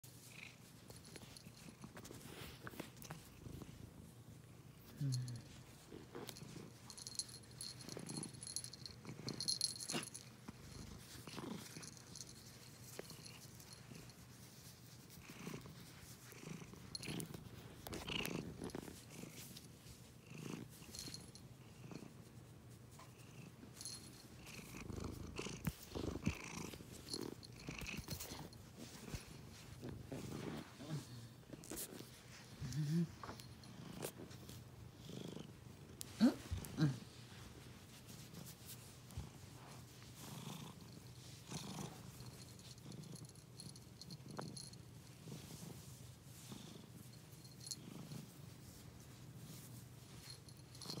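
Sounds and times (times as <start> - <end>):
cat purring: 0.2 - 22.4, 23.0 - 51.0.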